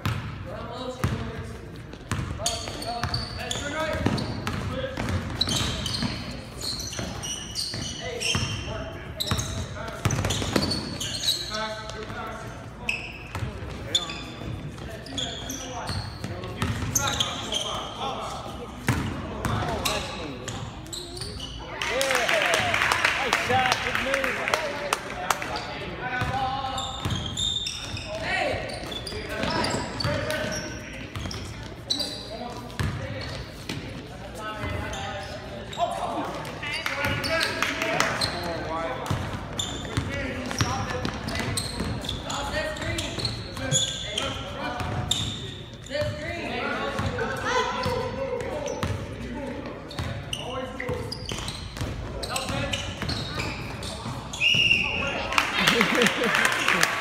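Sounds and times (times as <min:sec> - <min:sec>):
basketball bouncing on gym floor: 0:00.0 - 0:00.3, 0:01.9 - 0:03.2.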